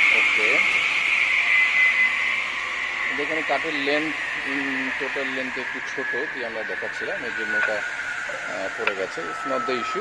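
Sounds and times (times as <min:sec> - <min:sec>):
cut-off saw whining: 0:00.0 - 0:10.0.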